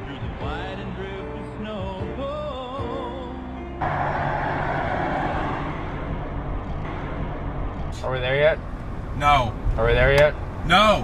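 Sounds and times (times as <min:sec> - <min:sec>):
song with singing: 0:00.0 - 0:03.7
pickup truck driving on road: 0:00.0 - 0:11.0.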